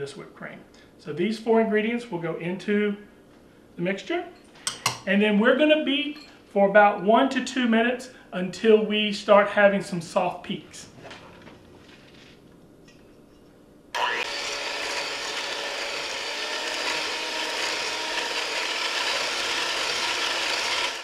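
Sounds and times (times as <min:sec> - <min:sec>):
electric hand mixer whipping cream: 0:14.0 - 0:21.0.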